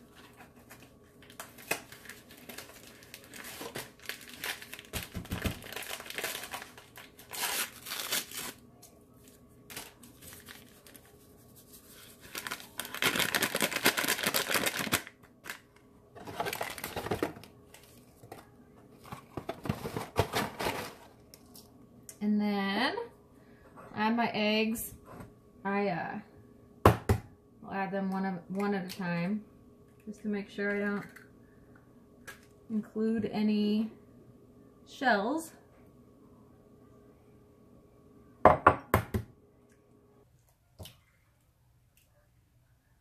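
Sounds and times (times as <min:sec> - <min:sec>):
packaging crinkling and tearing: 0:00.1 - 0:08.6, 0:09.7 - 0:11.2, 0:12.1 - 0:18.0.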